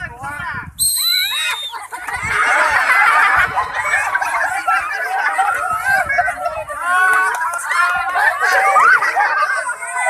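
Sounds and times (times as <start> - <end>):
crowd voices: 0.0 - 10.0
whistle blown: 0.8 - 1.8.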